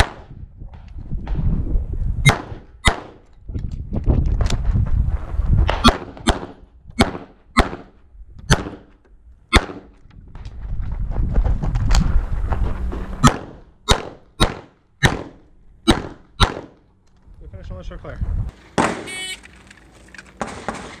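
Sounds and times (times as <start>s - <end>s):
low rumble of movement: 0.4s - 7.0s, 8.0s - 13.8s
pistol shots: 2.3s - 3.2s, 5.7s - 7.9s, 8.5s - 8.9s, 9.5s - 9.9s, 13.2s - 16.8s.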